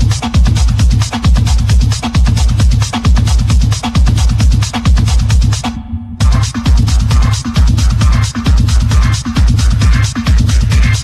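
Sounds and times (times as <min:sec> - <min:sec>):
dense hi-hats: 0:00.0 - 0:11.0
heavy kick drum: 0:00.0 - 0:11.0
techno music: 0:00.0 - 0:11.0.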